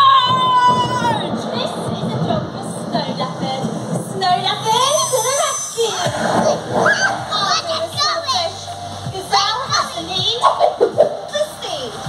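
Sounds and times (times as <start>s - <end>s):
children shouting and squealing: 0.0s - 2.2s, 4.6s - 8.8s
background music: 0.0s - 12.0s.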